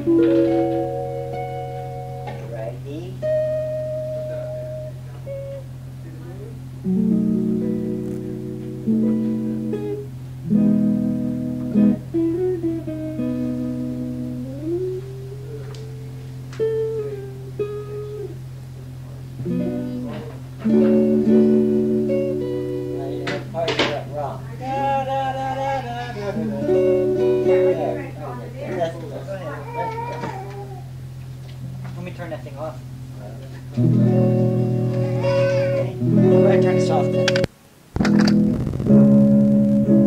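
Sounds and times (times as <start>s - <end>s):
acoustic guitar played slowly: 0.0s - 31.8s, 32.8s - 40.0s
steady low hum: 0.0s - 40.0s.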